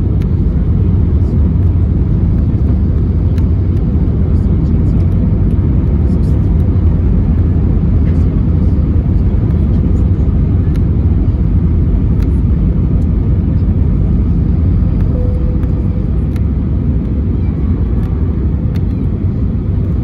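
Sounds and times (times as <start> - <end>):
airplane cabin engine rumble: 0.0 - 20.0.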